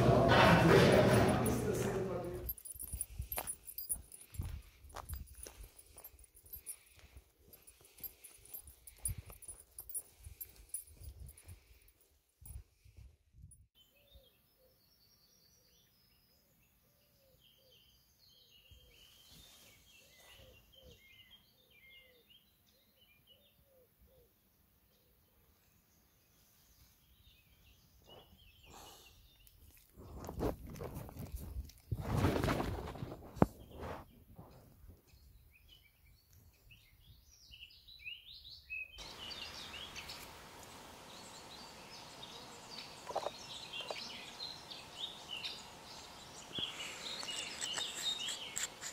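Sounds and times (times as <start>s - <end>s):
footsteps crunching on gravel: 1.4s - 10.8s
small birds chirping: 2.1s - 12.6s, 13.8s - 48.9s.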